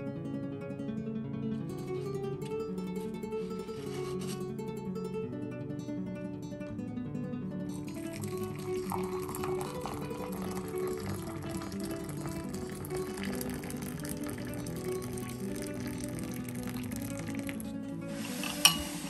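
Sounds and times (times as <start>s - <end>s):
background guitar music: 0.0s - 19.0s
water pouring into a mug: 7.8s - 19.0s.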